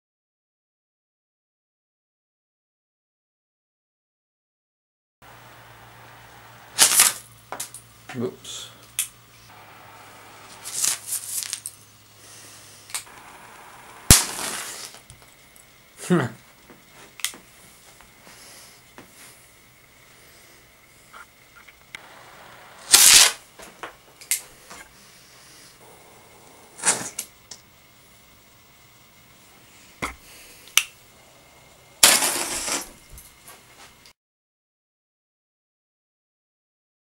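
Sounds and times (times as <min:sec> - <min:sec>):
burning propellant hiss: 0:05.3 - 0:21.2, 0:22.0 - 0:33.2
torch flame hiss: 0:05.9 - 0:21.2, 0:22.0 - 0:33.3
rocket engine ignition bang: 0:13.1 - 0:15.1, 0:22.0 - 0:23.6, 0:25.8 - 0:27.3.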